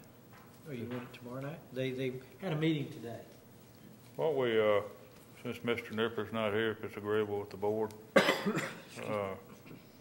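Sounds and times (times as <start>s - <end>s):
man coughing: 8.2s - 9.0s.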